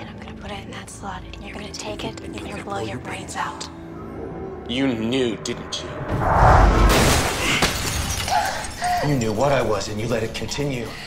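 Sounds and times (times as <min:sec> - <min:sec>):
glass pane shattering: 0:06.9 - 0:09.3
glass fragments rattling down: 0:07.0 - 0:09.5.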